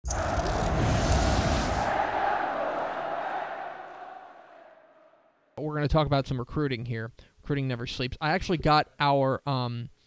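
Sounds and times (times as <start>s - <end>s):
loud rushing noise: 0.0s - 4.0s.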